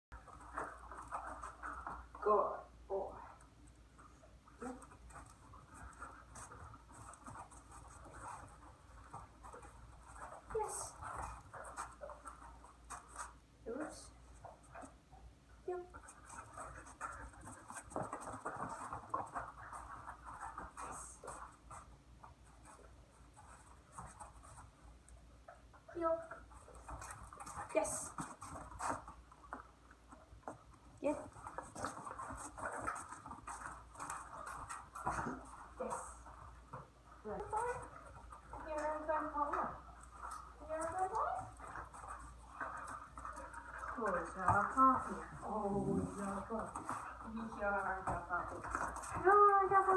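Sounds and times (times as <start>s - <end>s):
dog's paws on foam mats: 0.1s - 49.9s
soft footsteps on foam mats: 3.4s - 49.9s.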